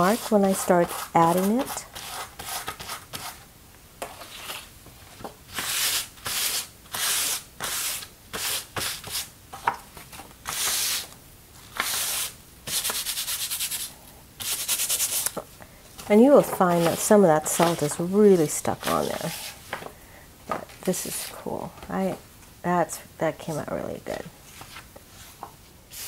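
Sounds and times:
hand rubbing paper: 0:11.7 - 0:15.4.

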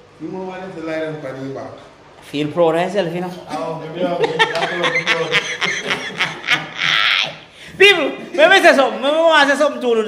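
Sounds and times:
person chuckling: 0:04.1 - 0:07.4.

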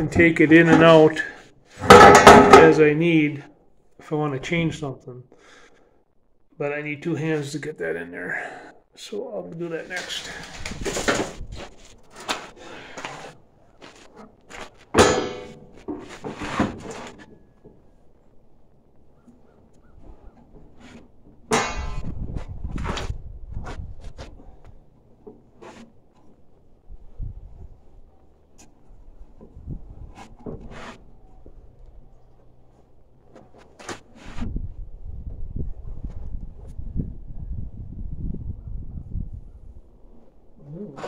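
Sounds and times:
sheet metal clanking: 0:00.6 - 0:02.8, 0:15.0 - 0:17.3
loud metal clangs: 0:01.8 - 0:02.8, 0:15.0 - 0:15.8.

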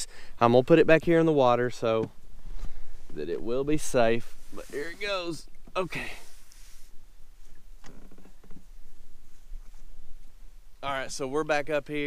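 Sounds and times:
faint clicks and knocks: 0:07.5 - 0:08.7.

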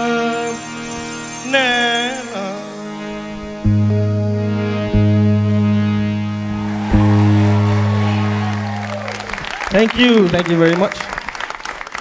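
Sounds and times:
band holding final chord: 0:00.0 - 0:09.4
audience applause: 0:06.6 - 0:12.0.

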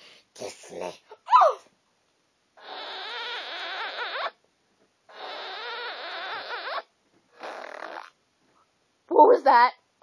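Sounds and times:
girl squealing into cupped hands: 0:01.3 - 0:01.6.

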